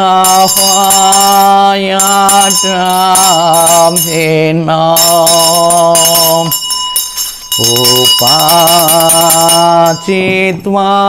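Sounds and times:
man chanting: 0.0s - 6.6s, 7.6s - 11.0s
struck metal bell ringing: 0.0s - 10.6s.

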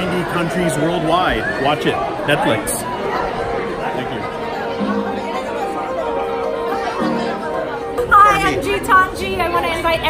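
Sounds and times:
crowd chatter: 0.0s - 10.0s
background music with held notes: 3.6s - 10.0s.

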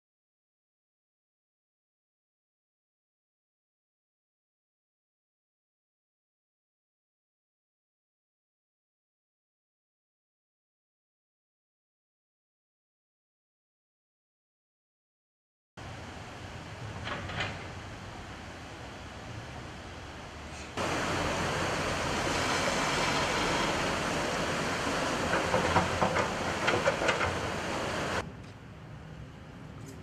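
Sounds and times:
floodwater rushing: 17.8s - 28.2s
knocks: 25.2s - 27.5s.

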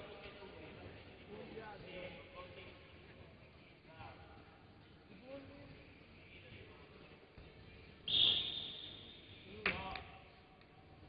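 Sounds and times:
referee's whistle: 8.1s - 9.5s.

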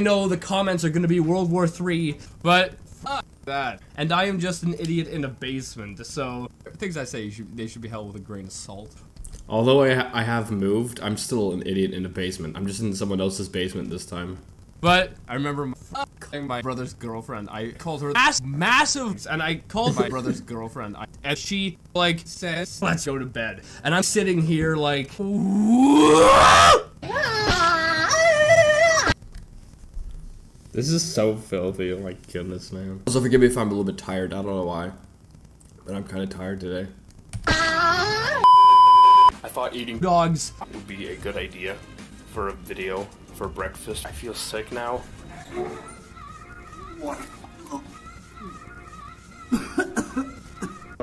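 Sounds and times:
man retching and gagging: 25.2s - 29.1s, 49.4s - 51.0s
person singing: 45.9s - 51.0s.

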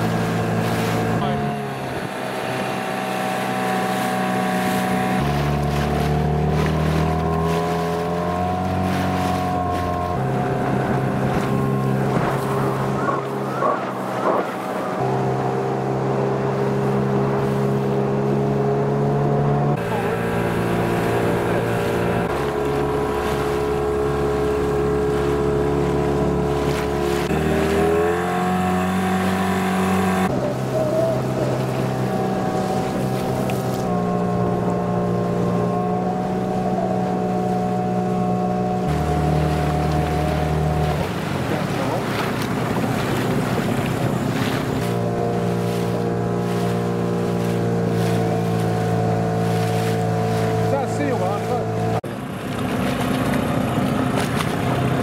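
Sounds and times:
outboard engine running: 0.0s - 55.0s.

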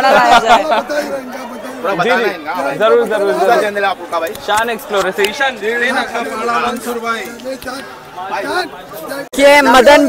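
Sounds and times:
background chatter: 0.0s - 10.0s
men talking: 0.0s - 10.0s.

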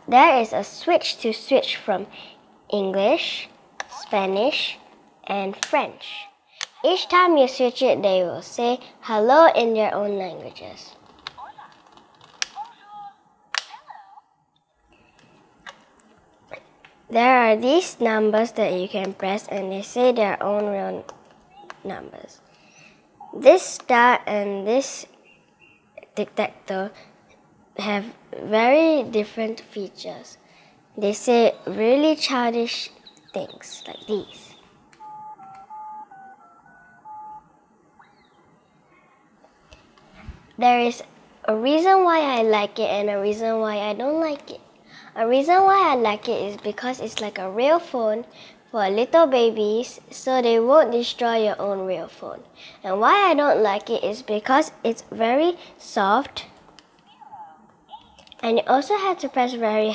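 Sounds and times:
toy phone dialing beeps: 35.0s - 37.4s.

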